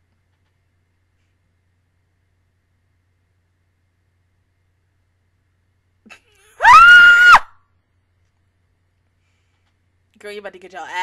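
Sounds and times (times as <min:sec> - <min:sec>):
high-pitched scream: 0:06.6 - 0:07.6.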